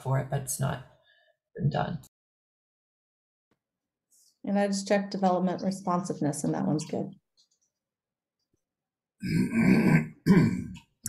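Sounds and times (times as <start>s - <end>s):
man clearing his throat: 9.2s - 10.8s.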